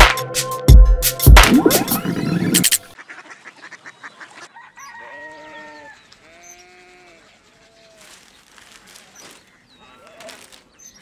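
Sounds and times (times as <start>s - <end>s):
rooster crowing: 4.6s - 6.0s.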